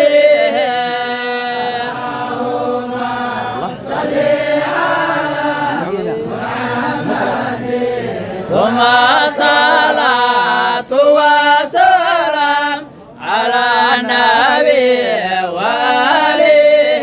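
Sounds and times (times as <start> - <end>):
men chanting a devotional song: 0.0 - 17.0.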